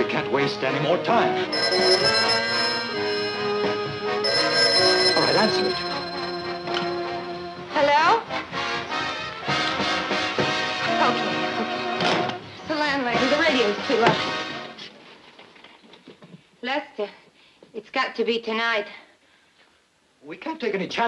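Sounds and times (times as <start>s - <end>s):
telephone bell ringing: 1.5s - 7.8s.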